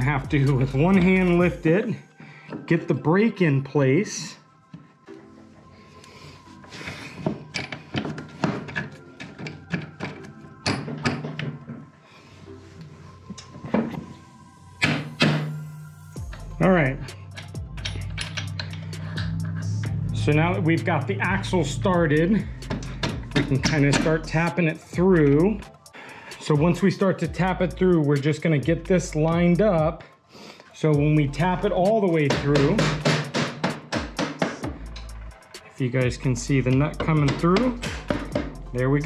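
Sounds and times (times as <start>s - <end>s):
background music: 0.0s - 39.0s
metallic clicks and taps: 17.3s - 19.5s
rubber mallet knocking metal: 32.3s - 34.8s, 36.9s - 38.6s.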